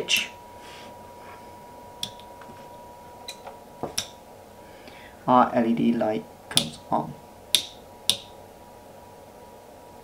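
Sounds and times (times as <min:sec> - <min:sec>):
rocker switch clicks: 0:02.0 - 0:02.3, 0:03.3 - 0:04.2, 0:06.5 - 0:06.8, 0:07.5 - 0:08.3.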